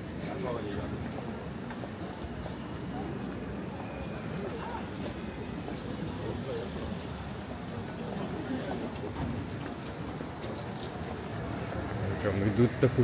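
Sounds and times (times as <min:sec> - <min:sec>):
passers-by talking: 0:00.0 - 0:13.0
traffic on wet road: 0:04.7 - 0:13.0.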